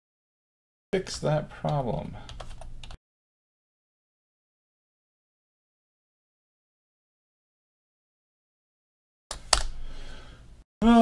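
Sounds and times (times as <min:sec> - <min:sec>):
man speaking: 0:01.0 - 0:02.3.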